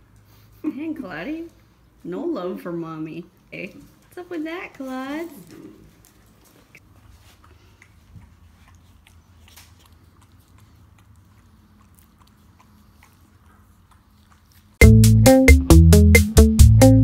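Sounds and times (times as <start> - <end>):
puppy nibbling clicks and rustles: 4.9 - 14.8.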